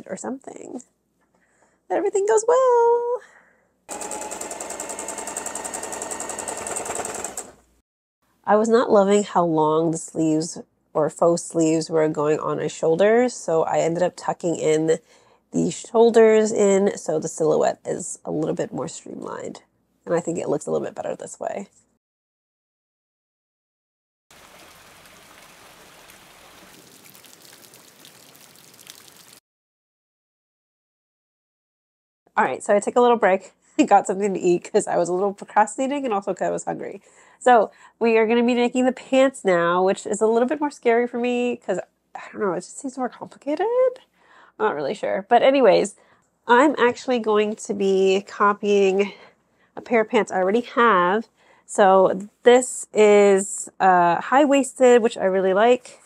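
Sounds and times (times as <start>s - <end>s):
electric sewing machine stitching: 3.9s - 7.7s
rain on wet paving: 24.3s - 29.4s
water drip ticks: 24.4s - 29.4s.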